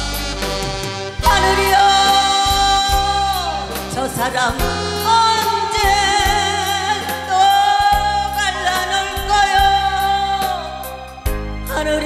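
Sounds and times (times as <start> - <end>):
instrumental accompaniment: 0.0 - 12.0
woman singing into a microphone: 1.2 - 12.0.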